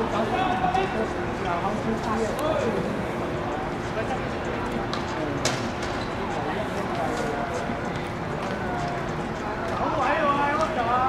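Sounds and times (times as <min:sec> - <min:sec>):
general noise of play: 0:00.0 - 0:11.0.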